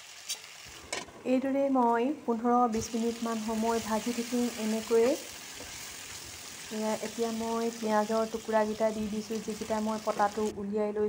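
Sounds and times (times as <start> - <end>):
chicken sizzling in a pan: 0.0 - 0.8, 2.8 - 10.5.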